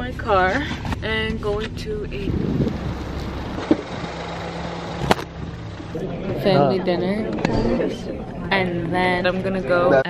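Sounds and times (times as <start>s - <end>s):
car engine rumbling: 0.0s - 9.9s.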